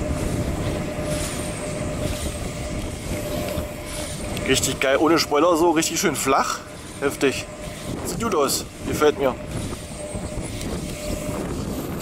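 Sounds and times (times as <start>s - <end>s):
faint constant hum: 0.0s - 12.0s
wind rumble: 0.0s - 12.0s.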